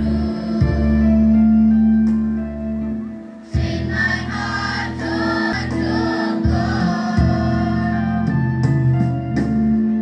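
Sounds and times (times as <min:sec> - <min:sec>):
mixed choir singing in parts: 0:00.0 - 0:01.4, 0:03.4 - 0:08.5
electronic keyboard accompaniment: 0:00.0 - 0:10.0.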